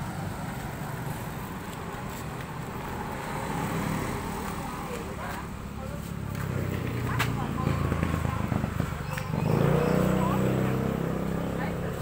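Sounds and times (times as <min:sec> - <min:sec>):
motorbike engines: 0:00.0 - 0:12.0
passing motor vehicles: 0:00.0 - 0:12.0.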